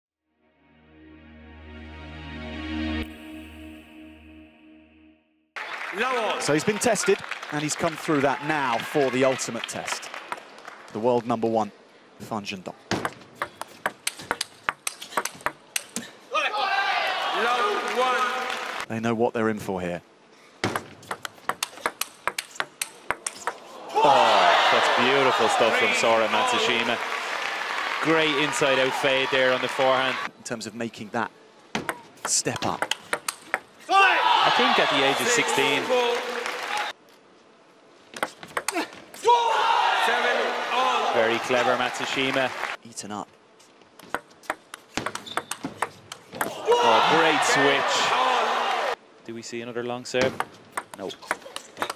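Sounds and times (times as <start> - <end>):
crowd clapping: 5.6 - 11.0, 17.4 - 18.9, 24.4 - 30.3, 35.1 - 37.0, 40.5 - 42.8
crowd cheering and shouting: 16.4 - 18.4, 23.6 - 30.3, 33.9 - 36.9, 39.2 - 42.6, 46.5 - 49.0
table tennis ball clicking: 21.1 - 23.6, 31.9 - 33.7, 44.1 - 46.2, 50.7 - 51.9.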